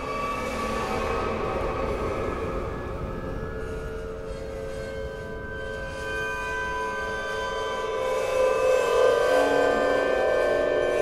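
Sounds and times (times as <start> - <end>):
dense drone of piano strings: 0.0 - 11.0.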